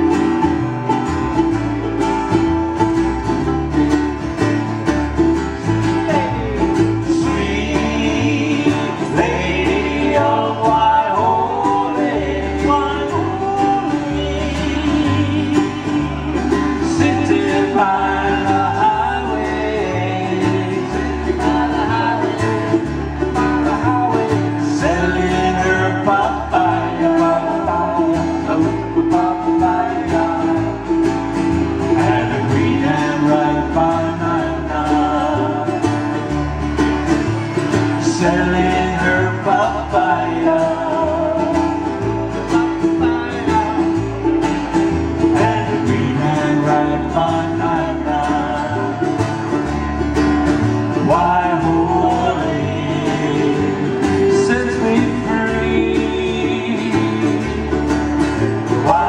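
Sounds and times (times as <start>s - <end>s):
acoustic guitars and ukulele strumming: 0.0s - 59.0s
bass line: 0.0s - 59.0s.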